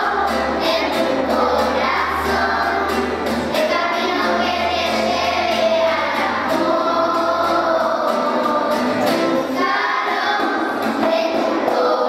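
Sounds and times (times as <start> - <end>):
acoustic guitar: 0.0 - 12.0
children's choir singing: 0.0 - 12.0.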